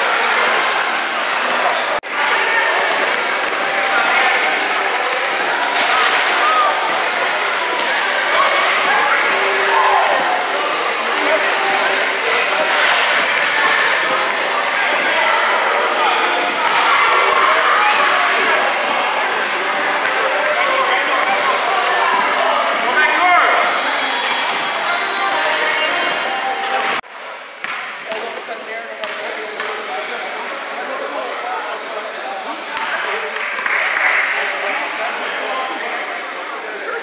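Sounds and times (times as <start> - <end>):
many voices overlapping: 0.0 - 37.0.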